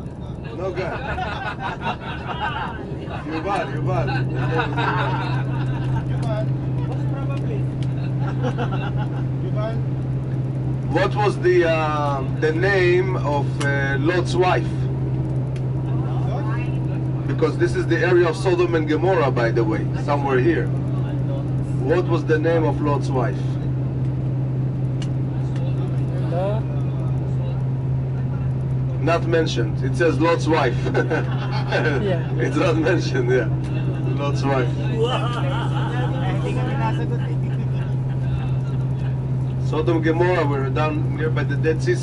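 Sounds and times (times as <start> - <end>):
bus engine and road drone: 0.0 - 42.0
passengers chattering: 0.0 - 42.0.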